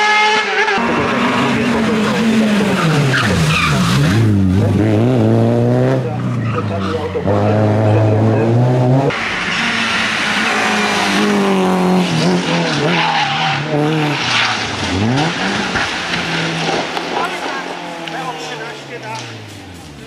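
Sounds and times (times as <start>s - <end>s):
race car engine revving: 0.0s - 20.0s
tyres skidding: 0.0s - 20.0s.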